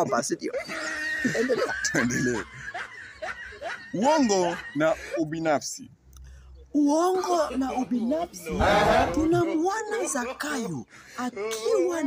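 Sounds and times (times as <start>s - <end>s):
men laughing: 0.0s - 5.4s, 8.5s - 9.6s.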